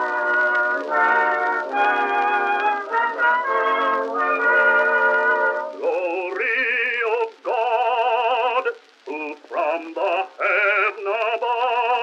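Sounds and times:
man singing a hymn: 0:05.7 - 0:12.0.

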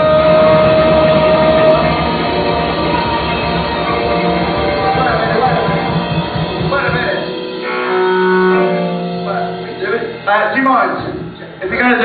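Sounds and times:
rock band drumming: 0:00.0 - 0:10.2
amplified chord ringing: 0:00.0 - 0:11.6.

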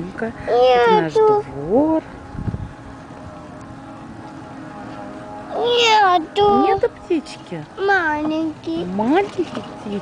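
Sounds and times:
small engine humming: 0:00.0 - 0:10.0
wind rumble on microphone: 0:01.6 - 0:03.4.

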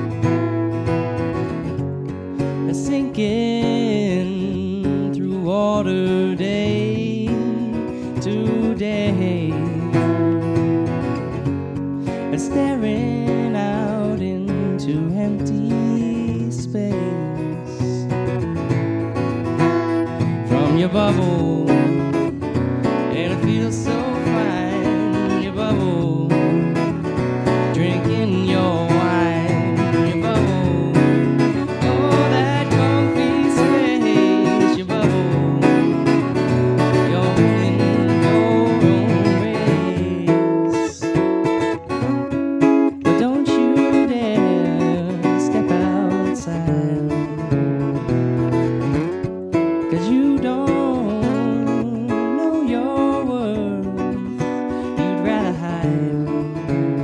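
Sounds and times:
acoustic guitar strumming: 0:00.0 - 0:57.0
man singing: 0:02.4 - 0:11.4, 0:12.0 - 0:18.5, 0:20.0 - 0:42.3, 0:42.9 - 0:47.8, 0:49.8 - 0:57.0.

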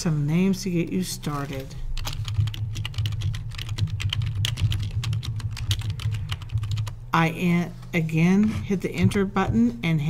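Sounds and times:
fast typing on keyboard: 0:02.0 - 0:07.0.

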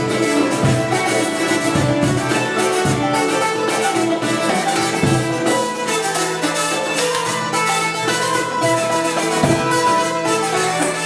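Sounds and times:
folk instrumental music: 0:00.0 - 0:11.0
hand drums: 0:00.0 - 0:11.0.

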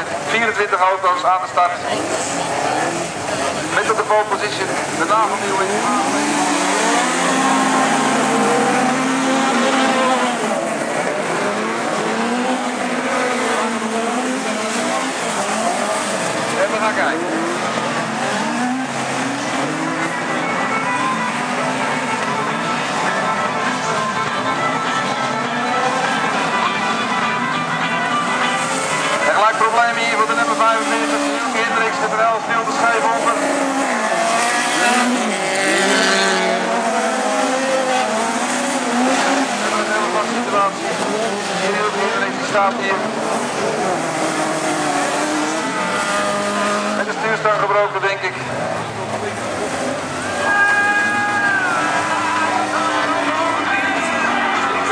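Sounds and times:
race car engines revving: 0:00.0 - 0:54.9.

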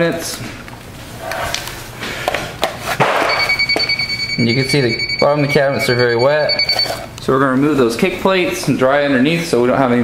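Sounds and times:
moisture meter high beep: 0:03.2 - 0:07.1.

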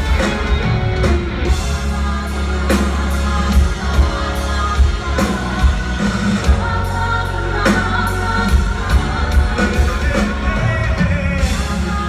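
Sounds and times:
live hard rock band: 0:00.0 - 0:12.0
person singing: 0:00.0 - 0:12.0.

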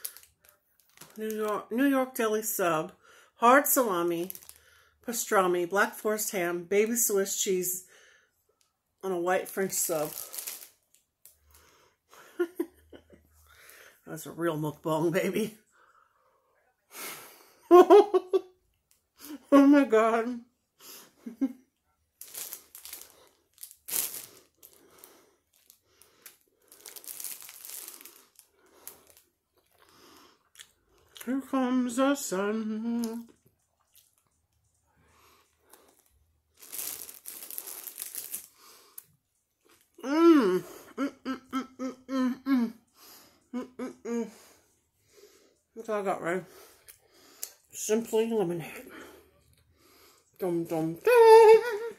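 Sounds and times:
woman's voice: 0:01.1 - 0:04.4, 0:05.0 - 0:07.8, 0:09.0 - 0:10.3, 0:14.1 - 0:15.6, 0:19.3 - 0:20.5, 0:31.2 - 0:33.3, 0:45.8 - 0:46.5, 0:47.8 - 0:49.1, 0:50.4 - 0:51.9
bread crunching and tearing: 0:04.2 - 0:04.7, 0:10.0 - 0:11.4, 0:22.2 - 0:31.2, 0:35.3 - 0:40.0
soft rustle: 0:09.6 - 0:11.0, 0:22.2 - 0:29.8, 0:35.2 - 0:38.9.

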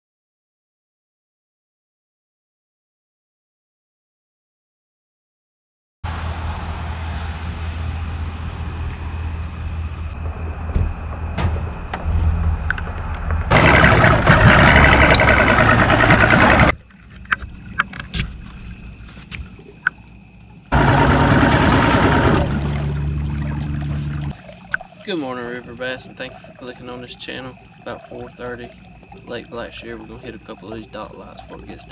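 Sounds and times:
loud rushing noise: 0:06.1 - 0:16.7
boat motor humming: 0:06.1 - 0:31.9
clicks: 0:14.9 - 0:15.6.

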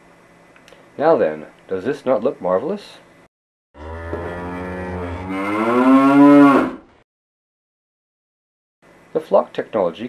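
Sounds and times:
cow mooing: 0:03.8 - 0:06.9.

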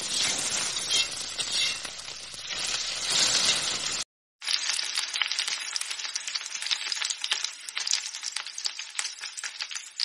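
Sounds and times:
metal spatula scraping a pan: 0:00.0 - 0:04.0
vegetables sizzling in a pan: 0:00.0 - 0:10.0.

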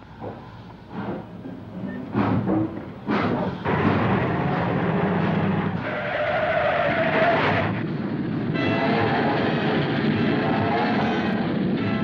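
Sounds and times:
train running at speed: 0:00.0 - 0:12.0.

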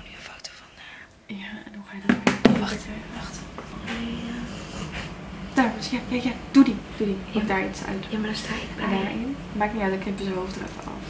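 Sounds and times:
quiet speech and whispering: 0:00.0 - 0:04.7.

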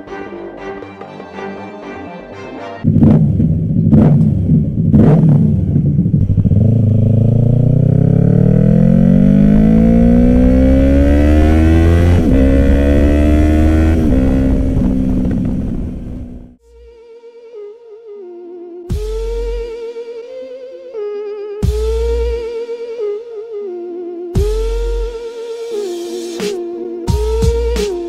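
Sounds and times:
motorcycle engine revving: 0:02.8 - 0:16.6.

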